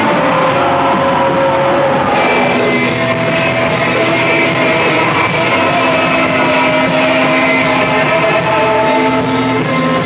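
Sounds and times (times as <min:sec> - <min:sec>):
distorted electric guitar droning: 0:00.0 - 0:10.0
punk band playing loud: 0:00.0 - 0:10.0.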